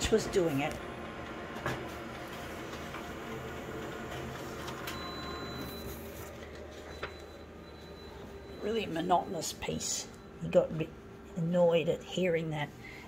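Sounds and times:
copier mechanical hum: 0.0s - 13.0s.

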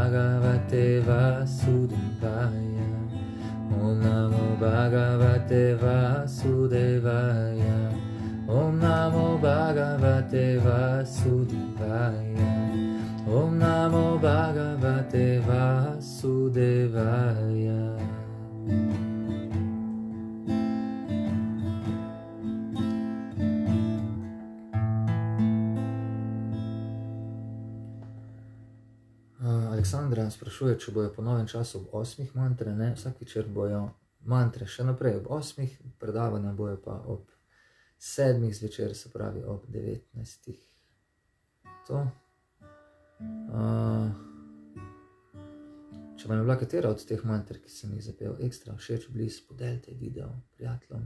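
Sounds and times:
man singing: 0.0s - 18.6s, 43.5s - 44.3s
strummed acoustic guitar: 0.0s - 31.8s, 41.6s - 48.7s.

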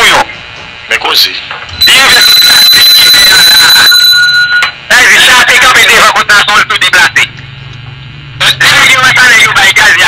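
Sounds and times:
high-pitched alarm beep: 1.7s - 4.8s.

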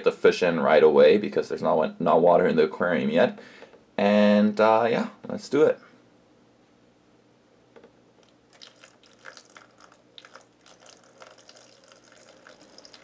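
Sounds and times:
water trickling and splashing: 8.5s - 13.0s.

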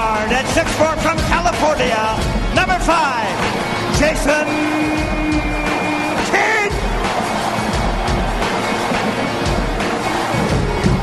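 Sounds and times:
crowd noise: 0.0s - 11.0s
loud arena music with bass beat: 0.0s - 11.0s.

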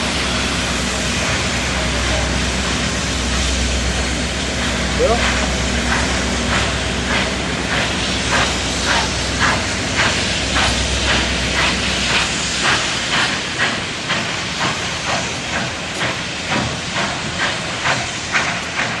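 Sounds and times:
steam hissing: 0.0s - 19.0s
steam locomotive exhaust chuffs: 0.0s - 19.0s.

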